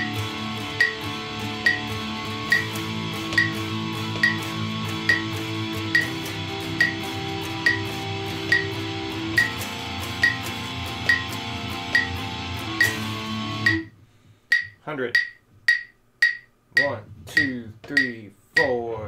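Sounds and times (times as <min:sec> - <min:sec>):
electric guitar strumming chords: 0:00.0 - 0:13.9
metronome clicking: 0:00.0 - 0:13.9, 0:14.5 - 0:18.8.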